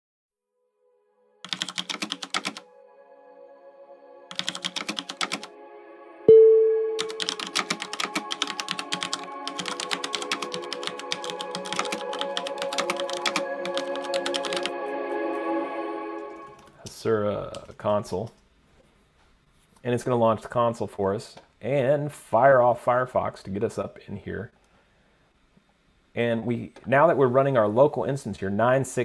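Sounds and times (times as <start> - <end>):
soft ambient music: 0.8 - 17.4
keyboard typing clicks: 1.5 - 2.6, 4.3 - 5.5, 7.0 - 14.7
loud ringing note: 2.6 - 16.7.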